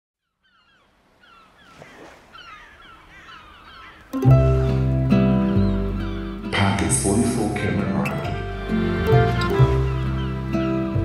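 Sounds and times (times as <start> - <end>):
birds calling: 0.2 - 11.0.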